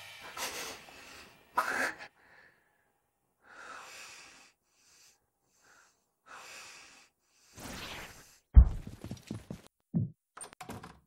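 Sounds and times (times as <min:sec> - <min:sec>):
heavy nasal breathing: 0:03.4 - 0:07.6.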